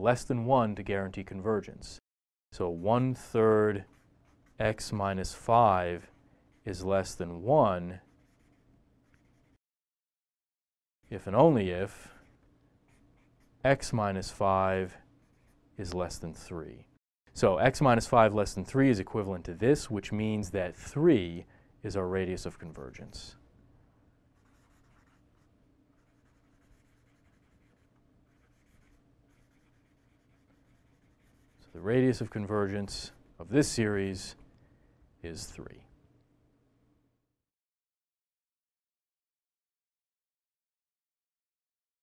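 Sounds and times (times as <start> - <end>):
marker pen writing on paper: 2.7 - 5.0, 8.0 - 9.6, 12.0 - 13.6, 15.2 - 15.6, 24.4 - 32.3.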